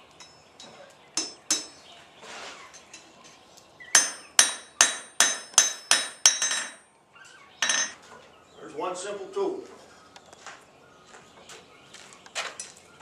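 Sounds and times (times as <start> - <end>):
hammer striking iron on anvil: 0.2 - 1.8, 4.0 - 6.9, 7.6 - 8.0.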